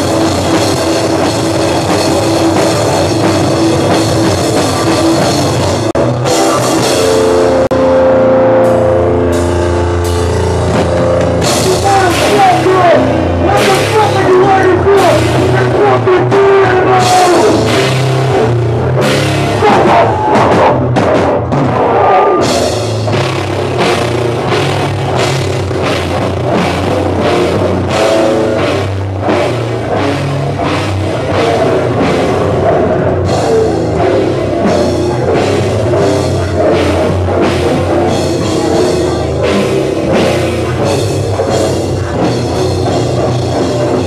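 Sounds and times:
heavy rock band playing: 0.0s - 44.0s.

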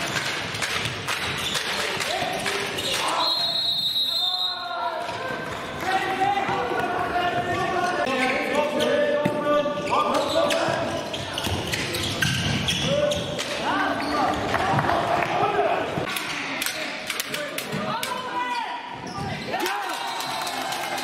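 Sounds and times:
players and spectators shouting: 17.8s - 21.0s.

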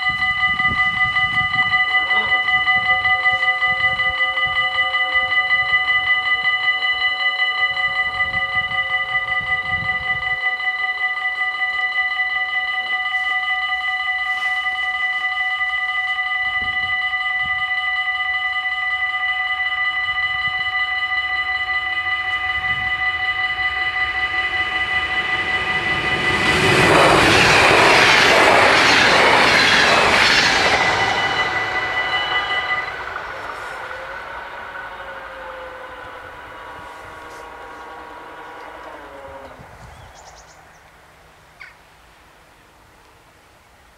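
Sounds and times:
level-crossing warning bells: 0.0s - 41.4s
train passing at speed: 0.0s - 43.9s
train wheels clattering: 24.6s - 35.3s.

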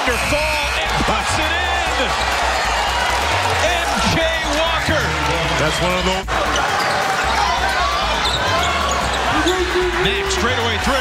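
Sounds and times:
arena crowd noise: 0.0s - 11.0s
sneakers squeaking: 6.5s - 10.0s.

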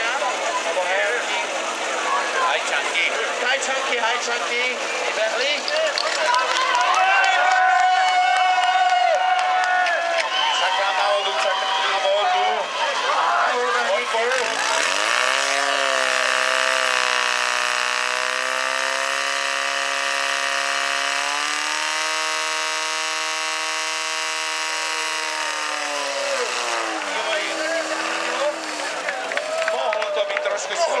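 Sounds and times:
voices and crowd noise: 0.0s - 20.4s, 24.7s - 31.0s
pump engine running: 13.8s - 29.7s.

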